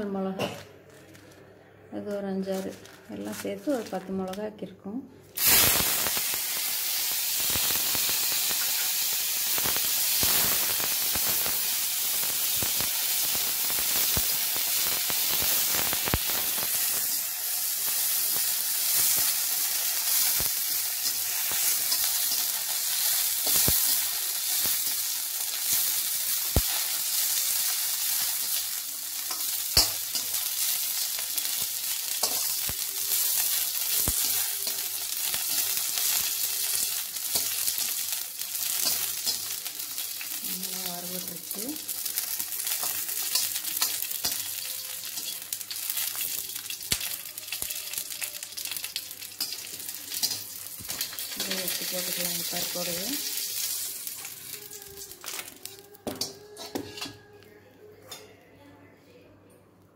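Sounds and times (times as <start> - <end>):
oil crackling and popping: 5.4 - 56.8
chillies sizzling in hot oil: 5.4 - 57.2.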